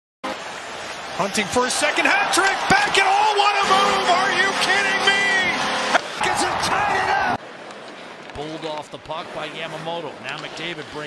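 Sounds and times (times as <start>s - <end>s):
crowd cheering: 0.2s - 7.4s
commentator talking: 1.2s - 7.3s
arena goal horn: 2.4s - 6.1s.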